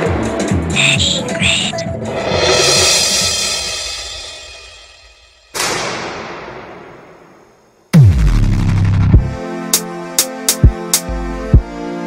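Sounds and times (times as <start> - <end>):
background music: 0.0 - 5.6, 7.9 - 12.0
song playing loudly: 0.4 - 4.4, 8.0 - 12.0
cymbal crash ringing: 2.2 - 5.6.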